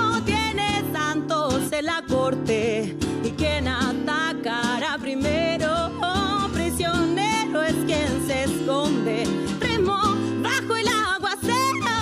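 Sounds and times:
acoustic guitar strumming: 0.0s - 12.0s
woman singing: 0.0s - 12.0s.

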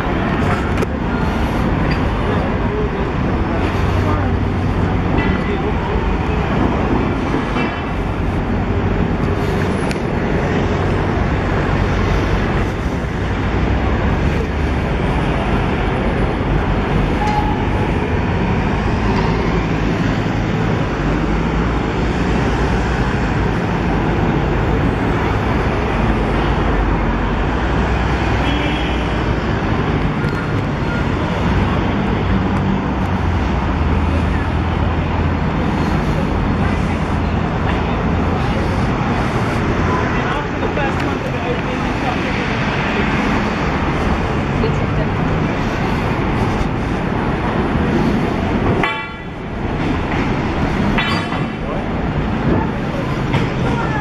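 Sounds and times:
city street traffic: 0.0s - 54.0s.

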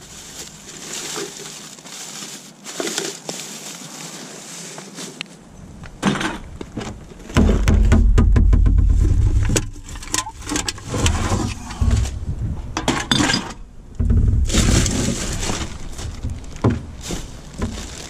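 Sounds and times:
plastic bags rustling and crinkling: 0.0s - 5.4s, 14.1s - 18.0s
low rumble on microphone: 5.5s - 18.0s.

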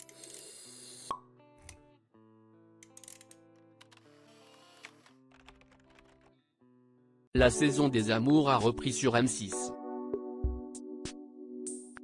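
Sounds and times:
music: 0.0s - 12.0s.

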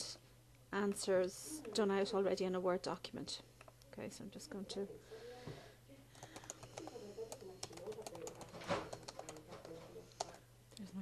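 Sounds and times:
keyboard typing: 6.1s - 10.4s.

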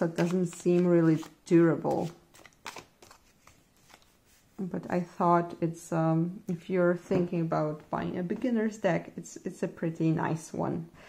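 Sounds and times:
cardboard cards clicking and rustling: 0.1s - 4.1s.

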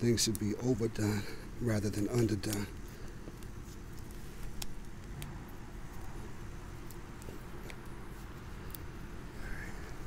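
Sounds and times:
tape crinkling and clicking: 0.0s - 0.7s, 2.0s - 6.2s
steady low rumble: 0.0s - 10.0s.

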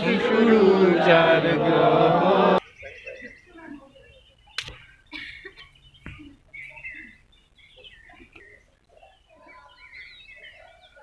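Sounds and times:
murmur of voices outdoors: 0.0s - 11.0s
sharp click: 4.6s - 4.8s.

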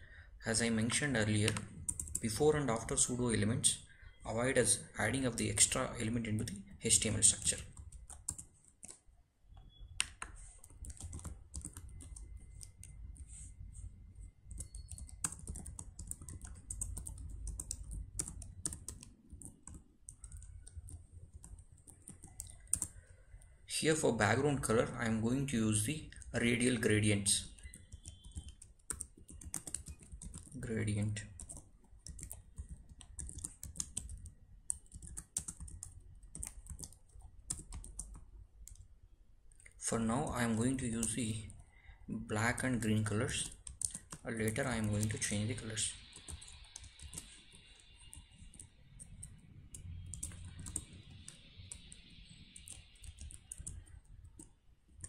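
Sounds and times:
computer keyboard key clicks: 31.4s - 38.8s, 48.1s - 55.0s.

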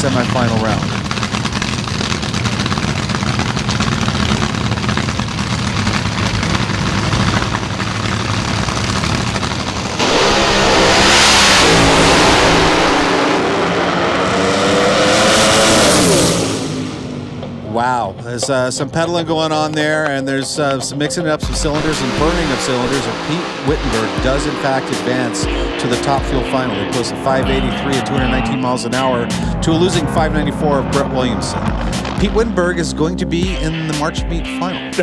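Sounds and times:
dragster engines roaring: 0.0s - 35.0s.

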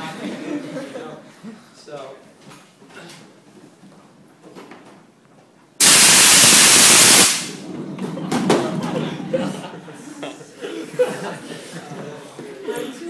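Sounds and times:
fire extinguisher gas blast: 5.8s - 7.6s.

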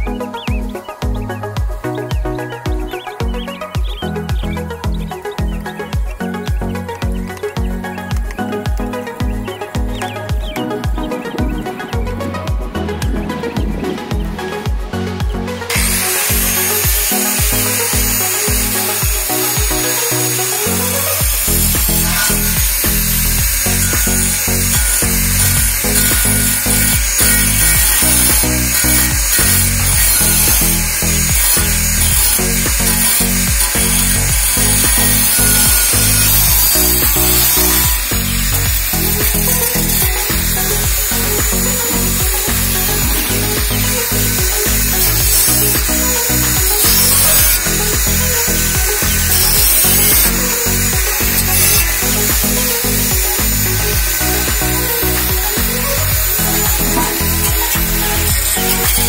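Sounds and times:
angle grinder cutting steel: 0.0s - 59.0s
background music with a beat: 0.0s - 59.0s.

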